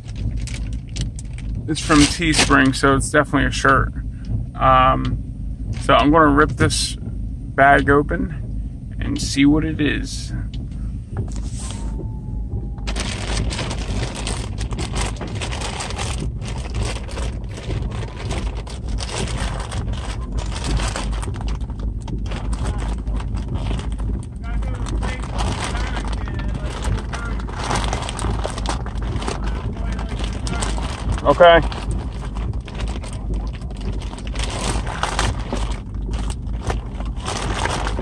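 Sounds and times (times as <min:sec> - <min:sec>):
steady low rumble: 0:00.0 - 0:38.0
plastic bag ripping and crinkling: 0:12.8 - 0:21.6, 0:24.6 - 0:38.0.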